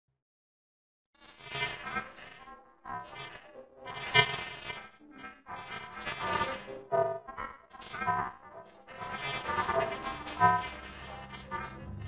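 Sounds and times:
distorted pitch-shifted logo jingle: 10.6 - 12.0.

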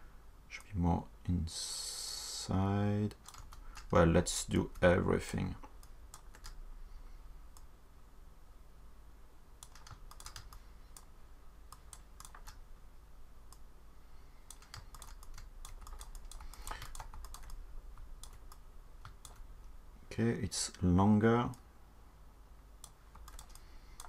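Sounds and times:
faint low hum: 0.0 - 24.0
keyboard keys clicking: 3.2 - 4.0, 5.8 - 6.6, 9.6 - 11.1, 11.8 - 12.6, 14.5 - 17.6, 18.2 - 19.5, 22.8 - 24.0.

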